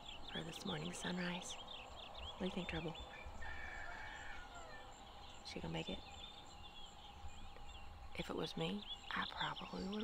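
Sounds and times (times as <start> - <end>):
rooster crowing: 3.1 - 5.0.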